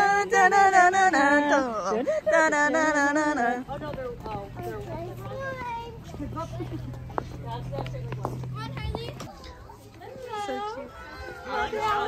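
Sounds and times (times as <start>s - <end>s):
young children calling out: 9.1s - 12.0s.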